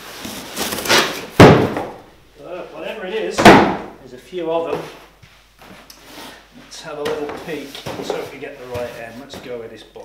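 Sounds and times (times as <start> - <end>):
boxes dropping onto floor: 0.2 - 2.0, 3.4 - 3.9, 7.0 - 9.5
cardboard slap: 0.6 - 2.0, 3.4 - 3.9.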